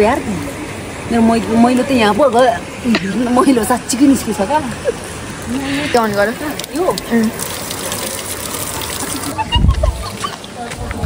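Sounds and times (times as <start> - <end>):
shower water spraying: 5.2 - 9.4.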